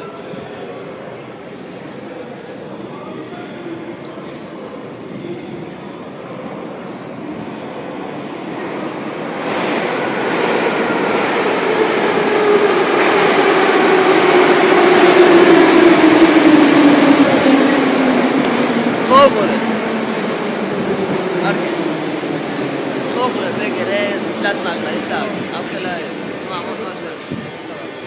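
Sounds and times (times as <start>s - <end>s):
train brake squeal: 10.6s - 11.2s.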